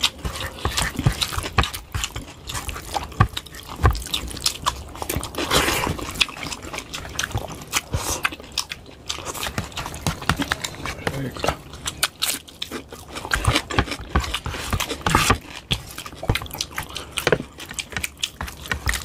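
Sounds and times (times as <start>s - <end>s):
chewing and lip-smacking: 0.0s - 19.0s
fingers squishing rice and gravy: 0.0s - 19.0s.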